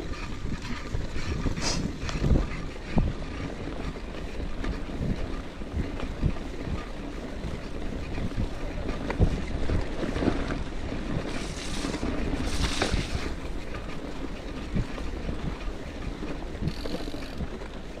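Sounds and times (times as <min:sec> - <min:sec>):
bike tyres rumbling on dirt: 0:00.0 - 0:18.0
wind buffeting microphone: 0:00.0 - 0:18.0.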